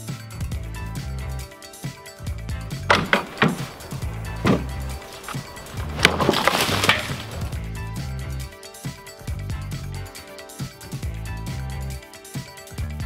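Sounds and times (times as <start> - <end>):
background music: 0.0 - 13.0
wooden crates cracking: 2.8 - 7.7
wood splintering: 2.8 - 7.8.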